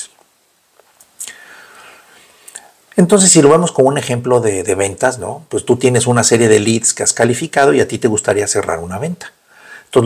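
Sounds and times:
man breathing in: 0:01.2 - 0:02.8, 0:09.4 - 0:09.9.

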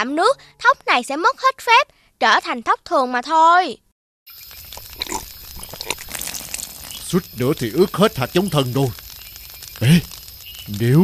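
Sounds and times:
crackling campfire: 0:04.3 - 0:11.0
man snorting and spluttering: 0:09.8 - 0:10.1.

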